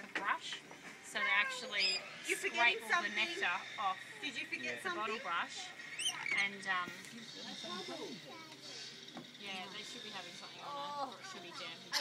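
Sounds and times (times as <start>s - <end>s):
people talking indistinctly: 0.0s - 12.0s
thin steady high tone: 1.5s - 12.0s.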